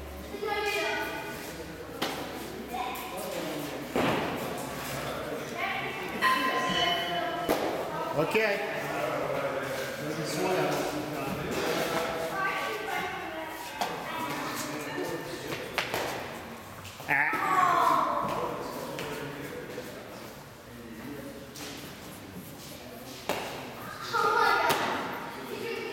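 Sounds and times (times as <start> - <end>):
indistinct voices in echoing hall: 0.0 - 25.9.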